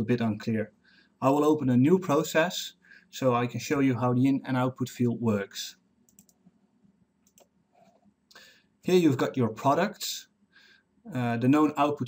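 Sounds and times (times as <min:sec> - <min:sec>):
computer mouse clicks: 0:06.0 - 0:06.6, 0:07.2 - 0:08.0.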